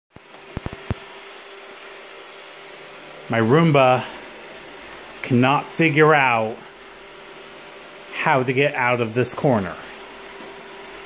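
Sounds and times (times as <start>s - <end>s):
robot vacuum humming: 0.2s - 11.0s.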